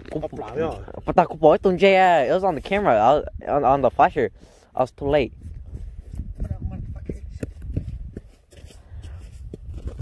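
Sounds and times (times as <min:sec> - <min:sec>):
wind rumble on microphone: 0:00.0 - 0:10.0
boots crunching on snowy ice: 0:08.2 - 0:10.0.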